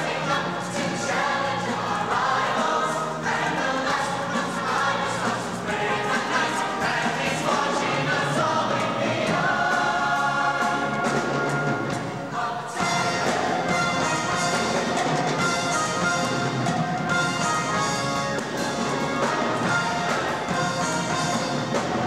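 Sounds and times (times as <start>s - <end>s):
choir singing: 0.0s - 22.0s.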